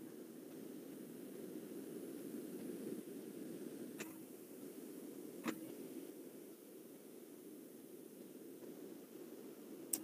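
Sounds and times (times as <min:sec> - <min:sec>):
faint microphone hiss and hum: 0:00.0 - 0:10.0.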